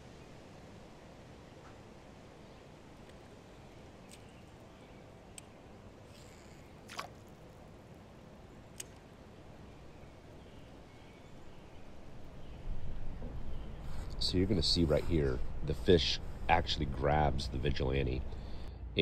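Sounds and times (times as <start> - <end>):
faint steady background noise: 0.0 - 19.0.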